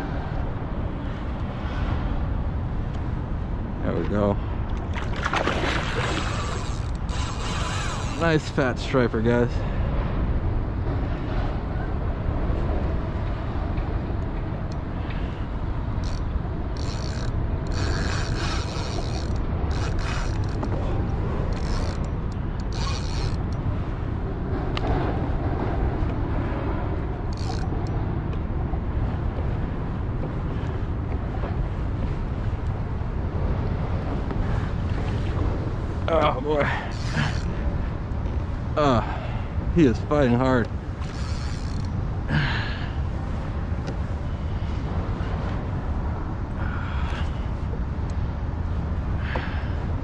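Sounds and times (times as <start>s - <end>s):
steady low rumble: 0.0s - 50.0s
fishing reel drag clicking: 6.1s - 8.3s, 16.0s - 20.8s, 21.5s - 23.6s, 27.4s - 28.0s, 36.9s - 37.5s, 41.0s - 41.9s.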